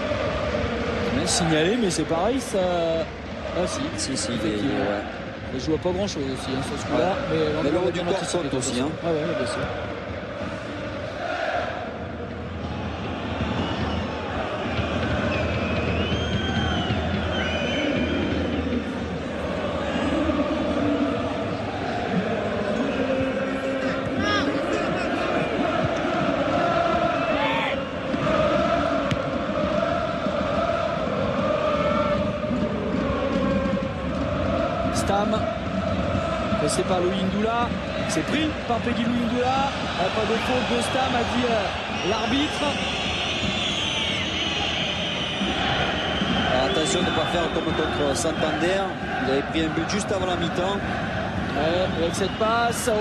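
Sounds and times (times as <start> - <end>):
crowd chanting and singing: 0.0 - 53.0.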